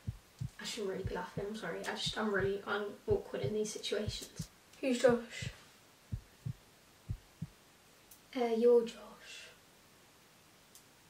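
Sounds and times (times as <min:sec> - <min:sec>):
heartbeat thumps: 0:00.0 - 0:07.6.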